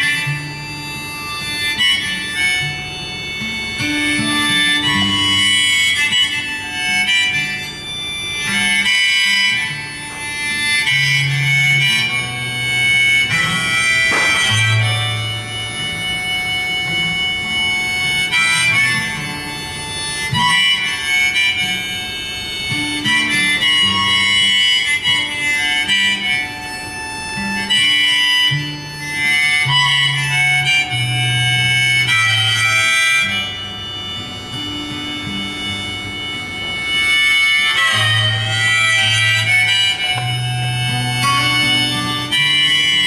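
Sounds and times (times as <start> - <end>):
harmonica long high note: 0.0 - 43.0
strummed acoustic guitar chords: 0.0 - 43.0.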